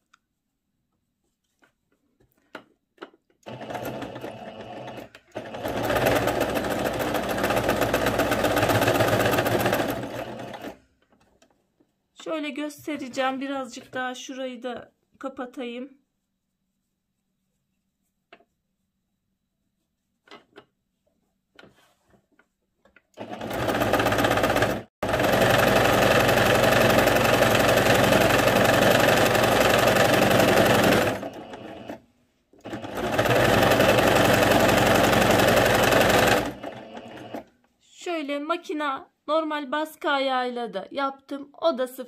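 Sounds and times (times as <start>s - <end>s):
sewing machine stitching: 3.4s - 10.8s, 23.2s - 32.0s, 32.6s - 37.5s.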